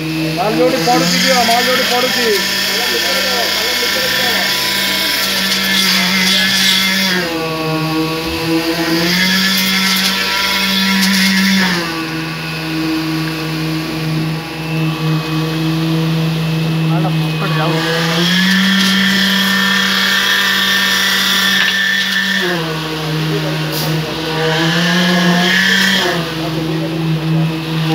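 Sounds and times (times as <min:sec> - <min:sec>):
concrete machinery humming: 0:00.0 - 0:27.9.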